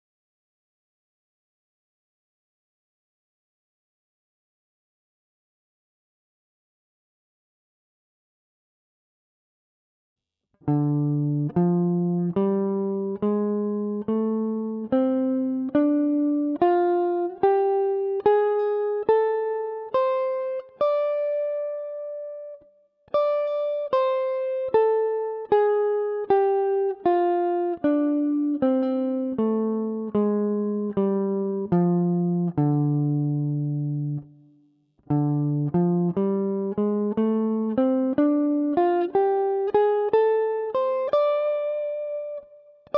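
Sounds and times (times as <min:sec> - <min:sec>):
electric guitar picking single notes: 0:10.7 - 0:34.3, 0:35.1 - 0:42.9.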